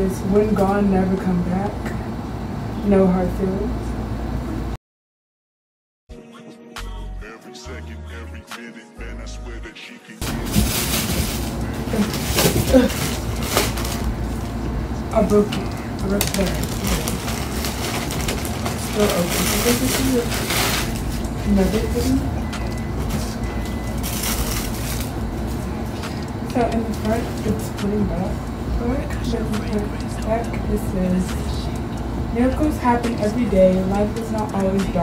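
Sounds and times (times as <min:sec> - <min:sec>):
low background hum: 0:00.0 - 0:04.8, 0:10.2 - 0:35.0
hip-hop music: 0:06.1 - 0:11.9, 0:29.1 - 0:35.0
fabric rustling: 0:10.2 - 0:14.4, 0:16.4 - 0:22.2
plastic package crinkling: 0:10.2 - 0:14.6, 0:15.6 - 0:22.0, 0:23.6 - 0:25.6.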